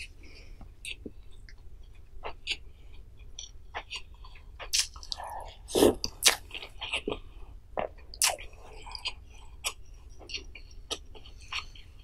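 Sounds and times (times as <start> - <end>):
mouth smacks and clicks: 3.4 - 7.2.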